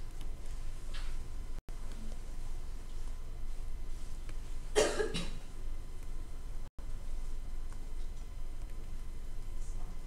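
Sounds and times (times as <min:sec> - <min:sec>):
person coughing: 0:04.7 - 0:05.5.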